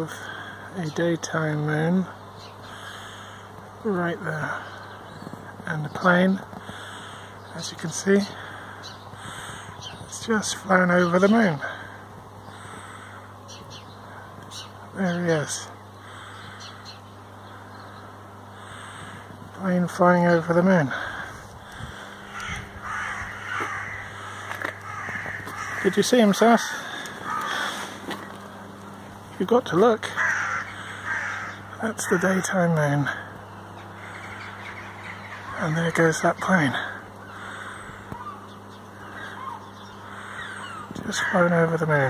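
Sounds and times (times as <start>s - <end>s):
faint bird calls: 0.0s - 42.0s
low outdoor hum: 0.0s - 42.0s
crows cawing: 2.4s - 3.8s, 6.4s - 42.0s.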